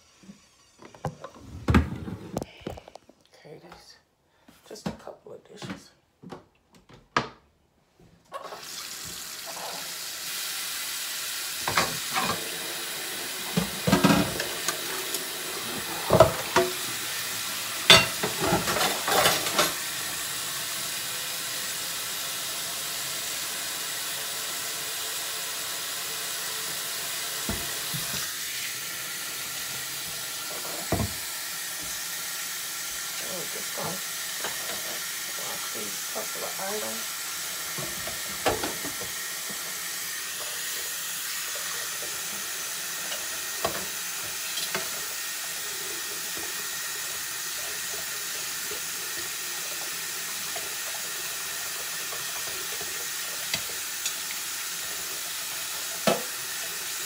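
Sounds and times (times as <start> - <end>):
faucet running into steel sink: 8.3 - 57.0
dishes clinking against sink: 11.6 - 12.5, 17.8 - 19.8.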